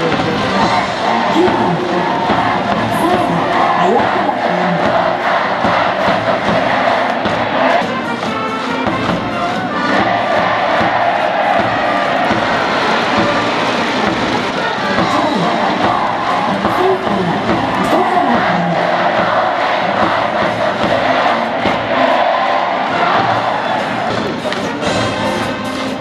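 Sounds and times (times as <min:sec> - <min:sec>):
music: 0:00.0 - 0:26.0
stadium crowd cheering and chanting: 0:00.0 - 0:26.0.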